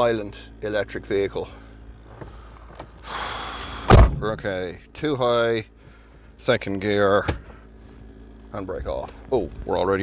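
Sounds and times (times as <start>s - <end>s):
car door slamming: 3.8s - 4.4s.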